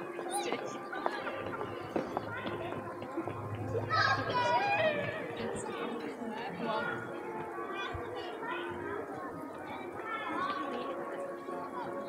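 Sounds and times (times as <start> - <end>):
background music: 0.0 - 12.0
children's voices: 0.0 - 12.0
crowd chatting: 0.0 - 12.0.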